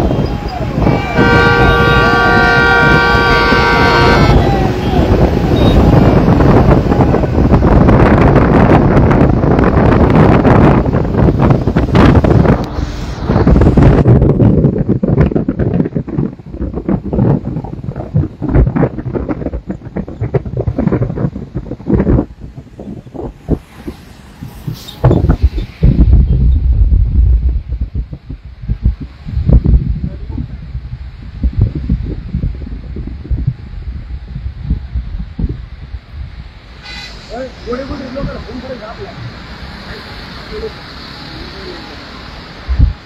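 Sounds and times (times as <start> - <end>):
wind buffeting microphone: 0.0 - 41.3, 42.1 - 43.0
road noise: 0.0 - 43.0.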